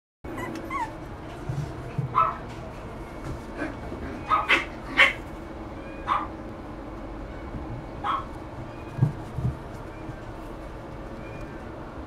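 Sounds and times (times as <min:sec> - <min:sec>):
puppy yipping and barking: 0:00.3 - 0:01.0, 0:04.2 - 0:05.2, 0:05.8 - 0:06.3, 0:08.0 - 0:08.9.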